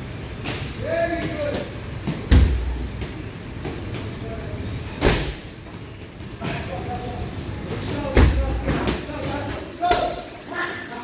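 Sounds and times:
steady low hum: 0.0 - 10.4.

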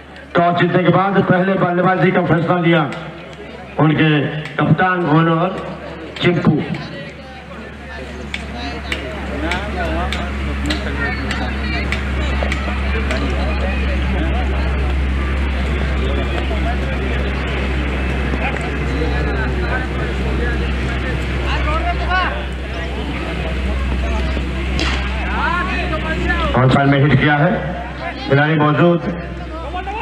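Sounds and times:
chatter of voices: 0.0 - 30.0
steady low hum: 0.0 - 30.0.

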